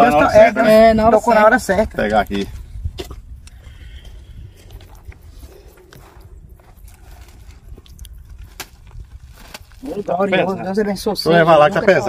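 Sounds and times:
wind rumble on microphone: 0:00.0 - 0:10.0
footsteps on dirt road: 0:02.2 - 0:10.2.

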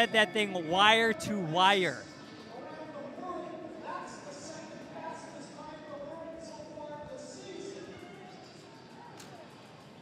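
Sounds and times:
indistinct voices talking: 0:00.0 - 0:02.0.

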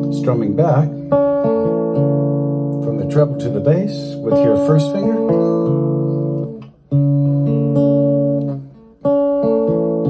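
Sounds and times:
guitar chord strummed and ringing: 0:00.0 - 0:10.0.

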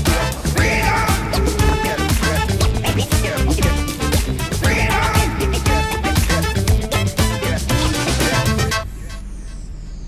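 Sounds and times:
music with strong beat: 0:00.0 - 0:08.9.

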